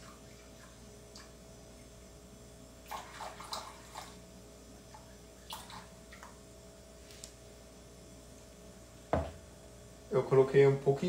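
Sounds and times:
low steady hum: 0:00.0 - 0:11.0
plastic jug knocking on wood: 0:09.1 - 0:09.4.

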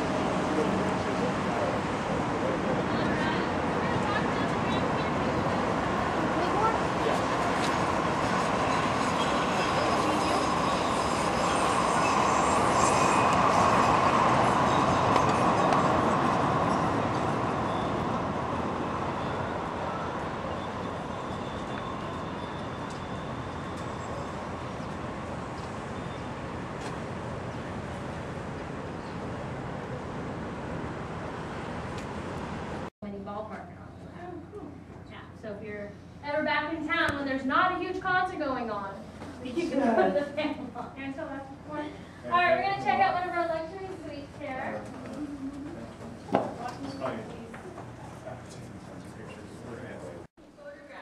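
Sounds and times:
light-rail train rumble: 0:00.0 - 0:32.9
high-pitched wheel squeal: 0:08.4 - 0:18.2, 0:19.1 - 0:24.5.

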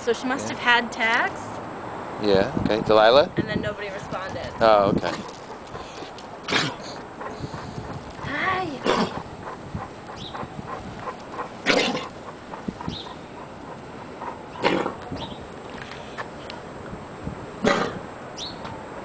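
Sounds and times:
dog coughing harshly: 0:06.5 - 0:07.0, 0:08.8 - 0:09.2, 0:11.6 - 0:12.2, 0:17.6 - 0:18.1.

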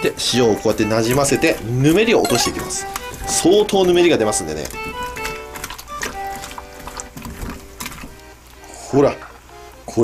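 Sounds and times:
wet squishing of hands kneading fish: 0:00.0 - 0:09.4
background music with held notes: 0:00.0 - 0:10.0.

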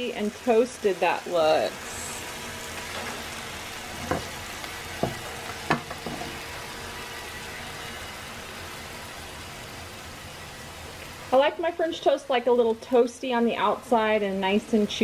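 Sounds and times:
frying sizzle: 0:00.0 - 0:15.0
spatula knocking against pan: 0:05.0 - 0:06.1.

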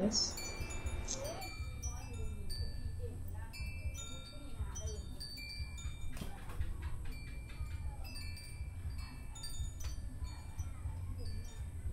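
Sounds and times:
steady low hum: 0:00.0 - 0:06.2
chimes ringing: 0:00.0 - 0:11.9.

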